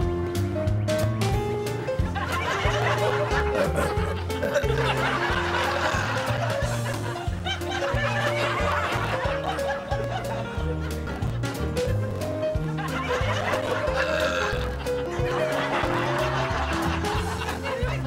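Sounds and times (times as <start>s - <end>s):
light background music: 0.0s - 18.0s
laugh track: 1.8s - 18.0s.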